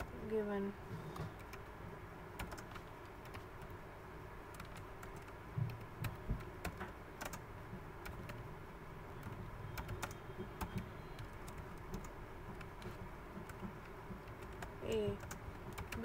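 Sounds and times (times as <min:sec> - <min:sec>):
typing on computer keyboard: 0:02.4 - 0:03.8, 0:04.5 - 0:08.4, 0:09.2 - 0:16.0.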